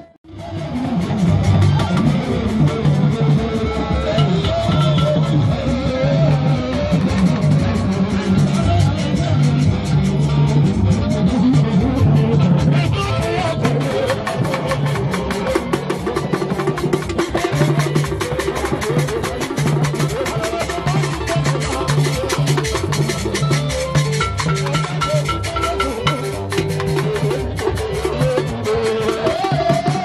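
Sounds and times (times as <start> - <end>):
keyboard bass line: 0.0 - 30.0
hand-beaten wooden drums: 0.2 - 30.0
wood-block-like percussion: 0.3 - 30.0.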